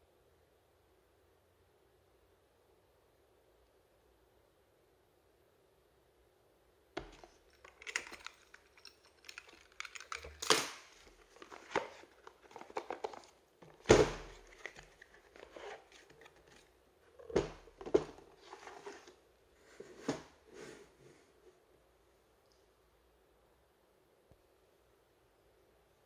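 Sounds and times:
cardboard and plastic rustling: 7.0 - 21.0.

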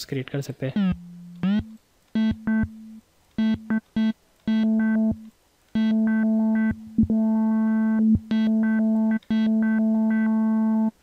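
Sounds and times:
pulsing synthesizer note: 0.8 - 3.8.

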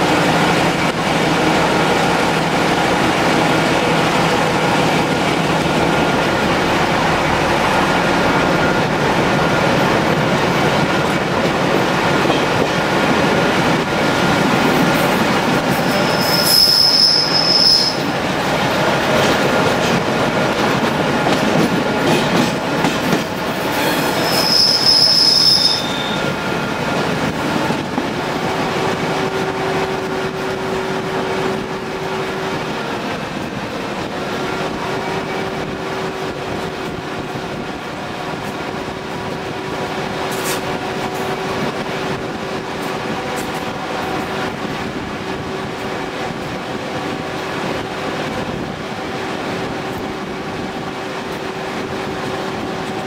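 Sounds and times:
train wheels squealing: 15.8 - 18.1, 23.7 - 26.4.

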